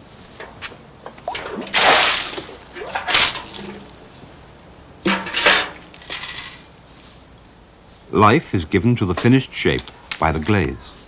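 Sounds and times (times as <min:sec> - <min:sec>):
water splashing over pebbles: 0:01.3 - 0:04.0.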